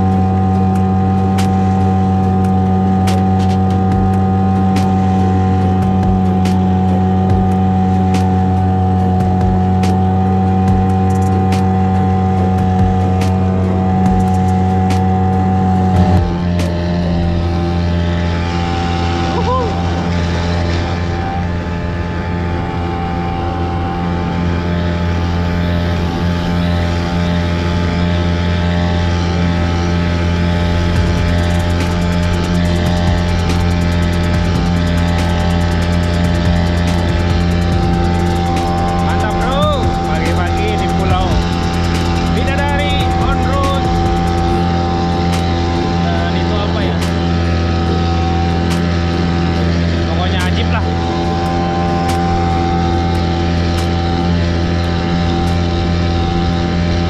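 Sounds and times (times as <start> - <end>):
outboard motor droning: 0.0 - 57.0
sharp ticks: 30.8 - 45.5.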